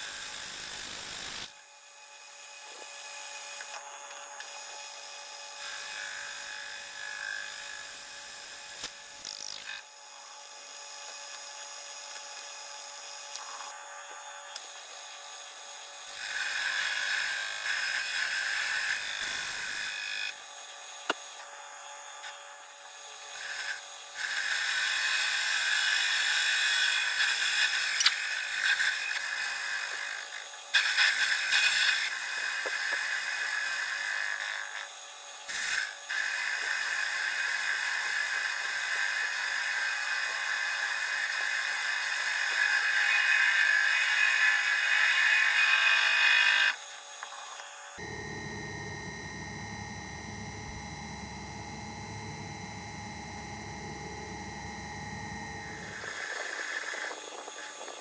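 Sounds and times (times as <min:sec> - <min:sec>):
lathe tool cutting metal: 0:16.1 - 0:20.2, 0:48.0 - 0:57.2.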